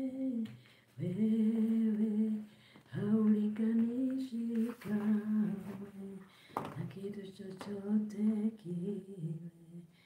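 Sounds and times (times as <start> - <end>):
breath: 0.6 - 1.0, 2.5 - 2.9, 6.3 - 6.6.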